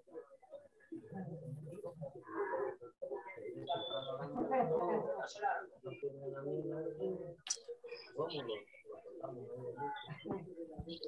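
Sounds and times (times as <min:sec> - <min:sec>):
indistinct talking over video call: 0:00.0 - 0:11.0.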